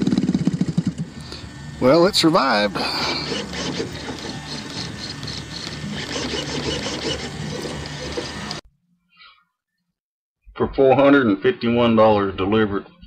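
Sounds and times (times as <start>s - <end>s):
model plane engine idling: 0.0s - 8.6s.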